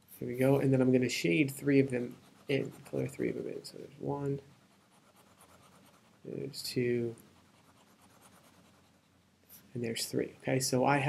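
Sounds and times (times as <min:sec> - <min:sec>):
pencil scribbling on paper: 0:02.0 - 0:03.2, 0:04.4 - 0:06.2, 0:07.3 - 0:09.1.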